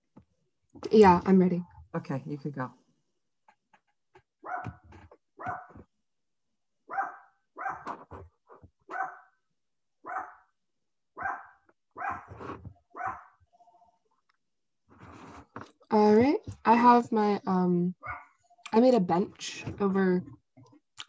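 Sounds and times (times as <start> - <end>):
dog barking: 4.4 - 4.8, 5.4 - 5.8, 6.9 - 8.0, 8.9 - 9.4, 10.0 - 10.5, 11.2 - 12.4, 13.0 - 13.4, 18.0 - 18.4.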